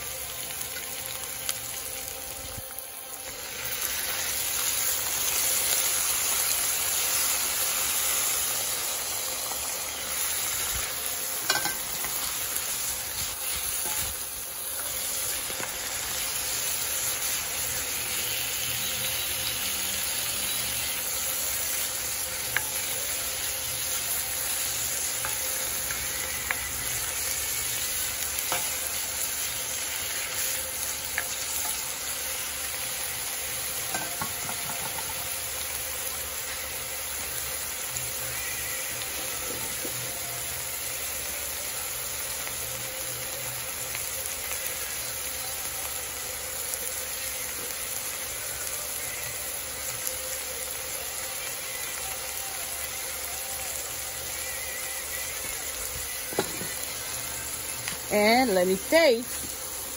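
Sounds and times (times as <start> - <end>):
spinach sizzling in a pan: 0.0 - 59.9.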